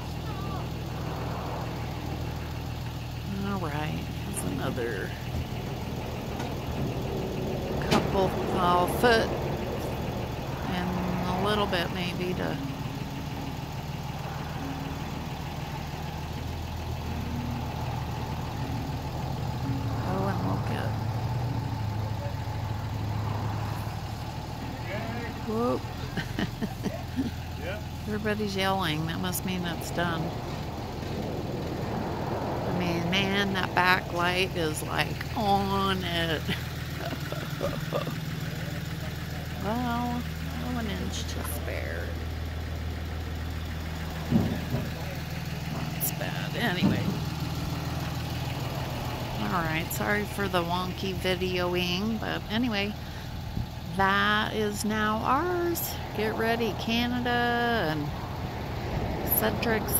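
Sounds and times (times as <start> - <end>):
truck engine idling: 0.0 - 59.9.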